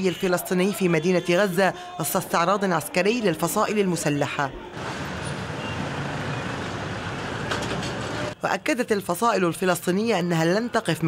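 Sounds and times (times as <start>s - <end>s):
cars and trucks driving slowly: 4.5s - 8.4s.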